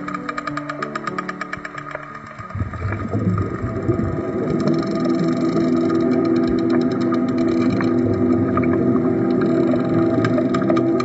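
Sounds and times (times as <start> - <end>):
faint clicks: 0.0 - 3.2, 4.5 - 11.0
low drone of held tones: 2.7 - 11.0.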